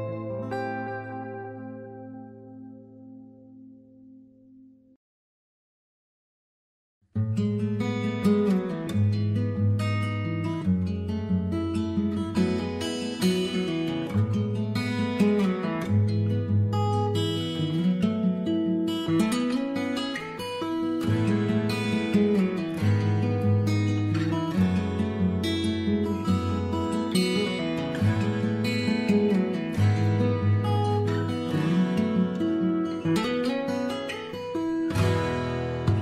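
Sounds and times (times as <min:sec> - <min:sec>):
acoustic guitar ballad: 0:00.0 - 0:04.7, 0:07.1 - 0:36.0.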